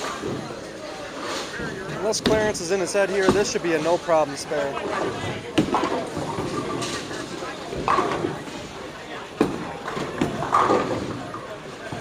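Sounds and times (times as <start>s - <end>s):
bowling balls and pins clattering: 4.8s - 12.0s.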